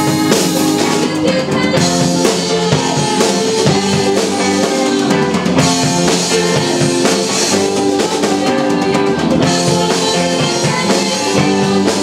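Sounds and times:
drum kit with cymbals: 0.0 - 12.0
guitar: 0.0 - 12.0
woman singing: 0.0 - 12.0.

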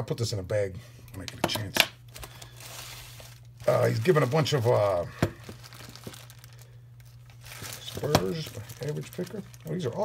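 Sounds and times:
plastic bag crinkling: 2.1 - 10.0.

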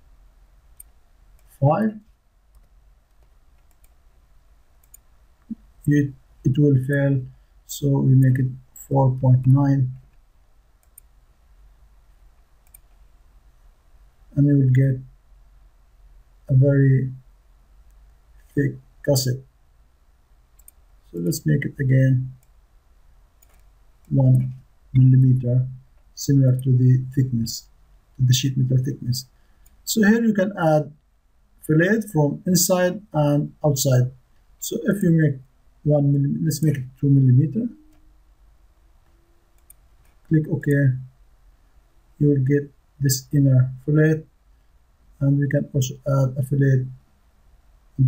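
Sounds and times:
low background hum: 0.0 - 48.0
computer mouse clicks: 0.7 - 1.5, 2.5 - 4.0, 4.8 - 5.6, 10.8 - 11.1, 12.4 - 13.0, 20.6 - 20.8, 23.4 - 24.6, 39.0 - 40.3
person speaking: 1.4 - 2.1, 5.5 - 10.1, 14.3 - 15.1, 16.5 - 17.2, 18.4 - 19.5, 21.1 - 22.5, 24.1 - 31.0, 31.6 - 38.0, 40.2 - 41.1, 42.2 - 44.3, 45.2 - 47.0.

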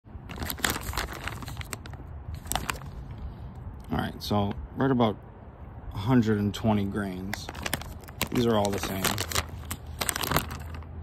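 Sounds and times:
packaging pouch crinkling: 0.2 - 3.1, 7.3 - 11.0.

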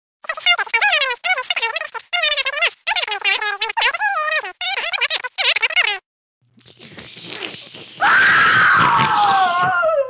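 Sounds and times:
long falling scream: 8.0 - 10.0.

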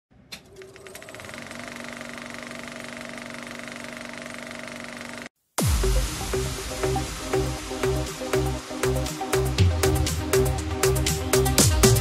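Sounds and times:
film projector whirring rattle: 0.4 - 5.3.

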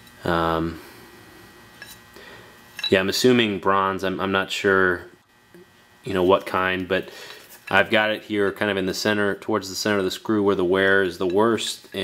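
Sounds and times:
man speaking: 0.2 - 0.9, 2.8 - 5.2, 6.1 - 12.0.

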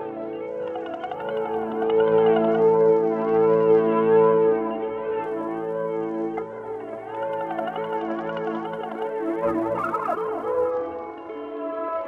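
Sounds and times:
siren-like synthesizer drone: 5.2 - 11.7.

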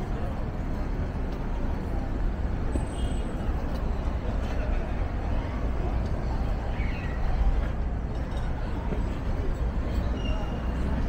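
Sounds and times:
city road traffic rumble: 0.0 - 11.0
faint voices of passers-by: 0.0 - 11.0.

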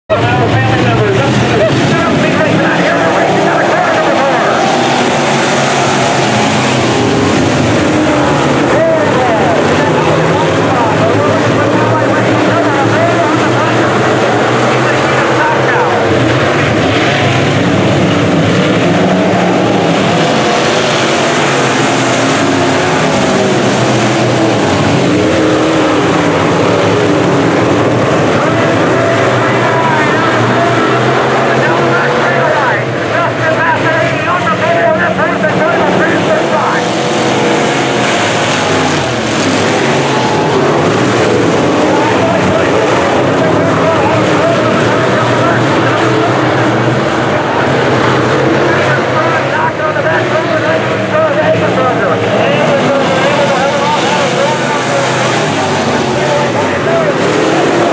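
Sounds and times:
race car engines revving: 0.0 - 57.9.

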